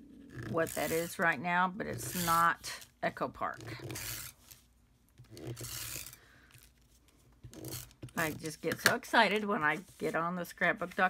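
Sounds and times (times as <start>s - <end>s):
cardstock rubbing and sliding: 0.4s - 4.6s, 5.2s - 6.2s, 6.8s - 11.0s.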